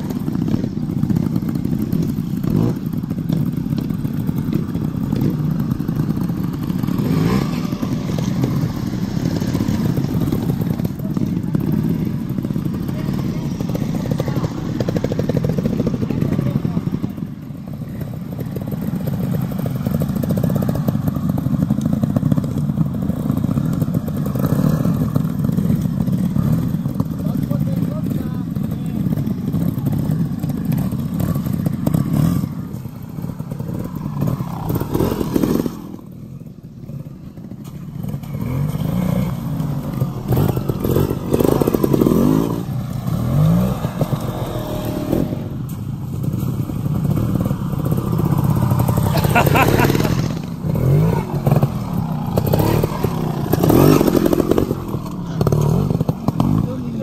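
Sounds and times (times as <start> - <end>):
motorcycle engines at low revs: 0.0 - 57.0.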